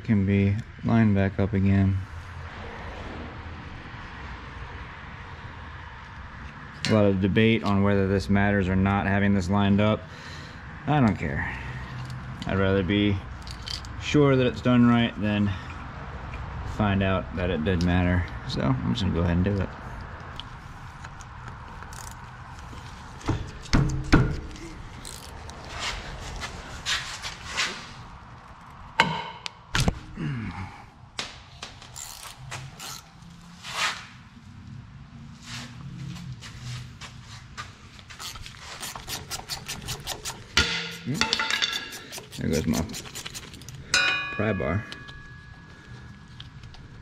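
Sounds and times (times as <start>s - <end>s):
ratchet wrench clicking: 21.2s - 22.2s, 25.0s - 25.4s, 32.0s - 33.1s.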